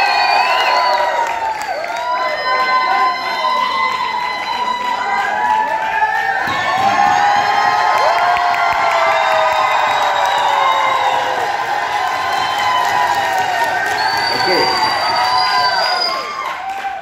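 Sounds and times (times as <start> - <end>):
crowd cheering and shouting: 0.0 - 17.0
people clapping: 0.0 - 17.0.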